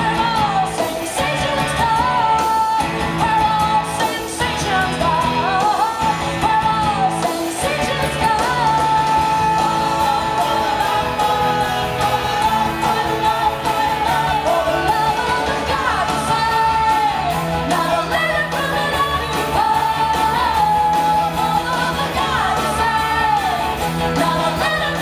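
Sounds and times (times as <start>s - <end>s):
live rock band playing: 0.0s - 25.0s.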